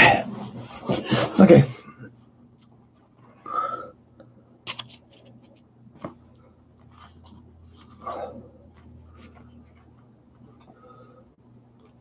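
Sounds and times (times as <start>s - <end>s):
cards being shuffled: 4.7s - 6.2s.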